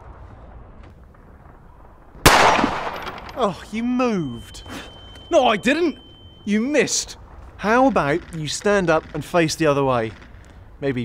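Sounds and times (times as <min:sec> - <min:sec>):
pistol shot: 0:02.2 - 0:03.4.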